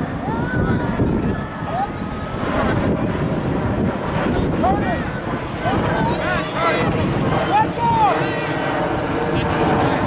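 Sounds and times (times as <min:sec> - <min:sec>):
distant shouts and calls: 0:00.0 - 0:02.7, 0:04.6 - 0:08.8
wind rumble on microphone: 0:00.0 - 0:10.0.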